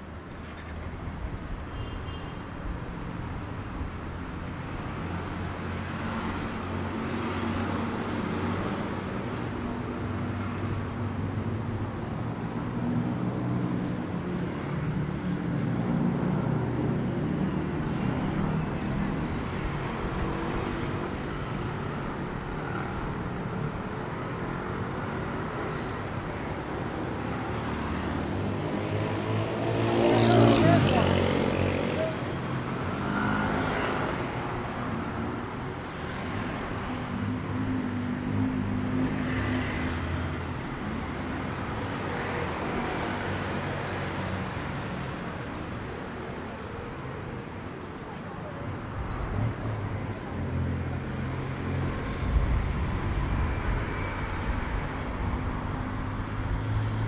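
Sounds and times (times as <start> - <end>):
car and scooter engines passing: 12.8 - 57.0.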